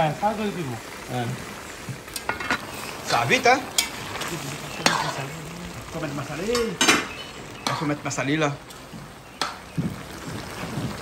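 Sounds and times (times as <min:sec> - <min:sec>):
stew sizzling in a pot: 0:00.0 - 0:11.0.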